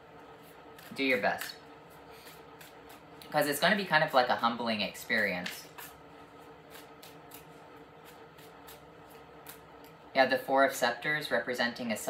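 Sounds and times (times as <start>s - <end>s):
faint steady hum: 0.0s - 12.0s
cards being shuffled: 5.4s - 6.0s.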